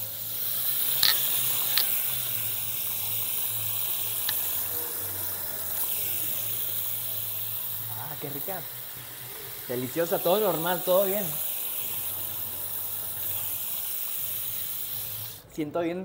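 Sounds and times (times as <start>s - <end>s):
tap water running: 0.0s - 15.4s.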